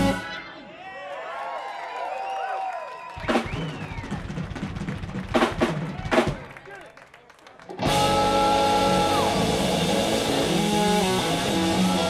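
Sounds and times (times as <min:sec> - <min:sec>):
live rock band playing: 0:00.0 - 0:00.5, 0:07.8 - 0:12.0.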